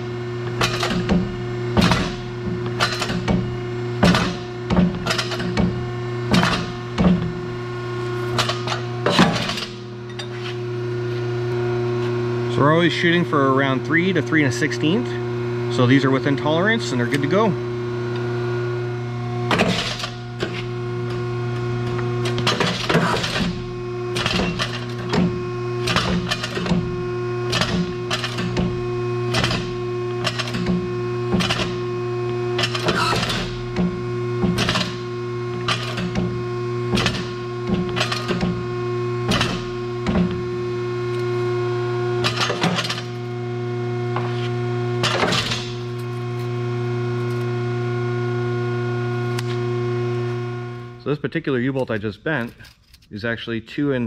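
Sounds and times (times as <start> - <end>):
pump motor humming: 0.0 - 51.0.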